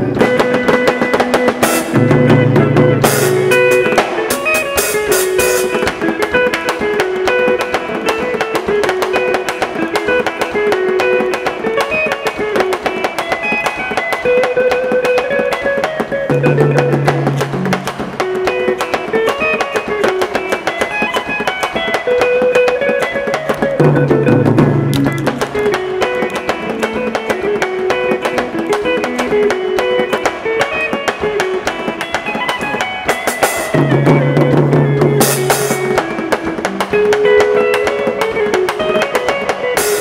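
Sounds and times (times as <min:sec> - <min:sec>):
drum kit beat: 0:00.0 - 0:40.0
electric guitar runs: 0:00.0 - 0:40.0.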